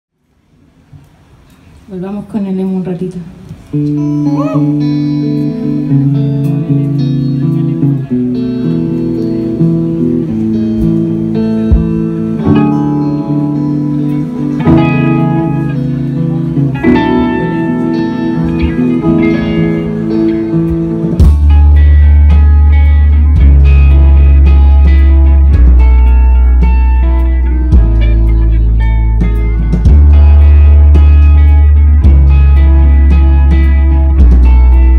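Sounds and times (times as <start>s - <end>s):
live band with electric guitars: 3.2s - 34.9s
heavy deep bass: 4.0s - 34.9s.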